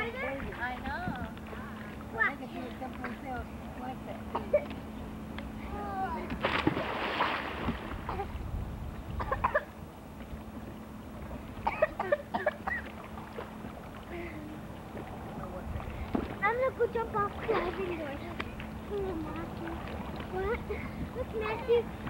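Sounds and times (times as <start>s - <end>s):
voices: 0.0s - 6.4s, 14.1s - 22.0s
steady low hum: 0.0s - 22.0s
water splashing in a pool: 6.3s - 8.3s, 9.6s - 22.0s.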